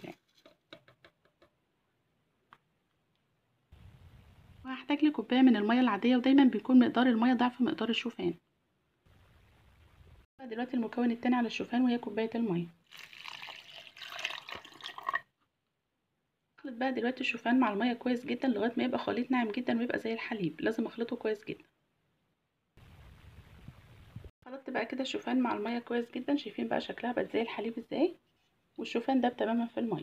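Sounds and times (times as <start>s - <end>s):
water pouring into plastic jar: 12.8s - 15.3s.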